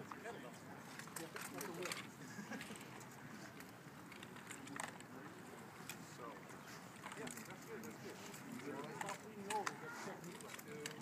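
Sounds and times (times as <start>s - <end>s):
faint voices talking: 0.0s - 11.0s.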